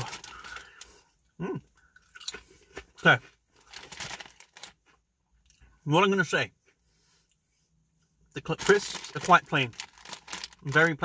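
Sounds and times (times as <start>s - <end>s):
crisp packet crinkling: 0.0s - 1.0s, 3.6s - 4.8s, 8.4s - 11.0s
potato crisps crunching: 0.0s - 1.0s, 2.1s - 4.8s, 8.4s - 11.0s.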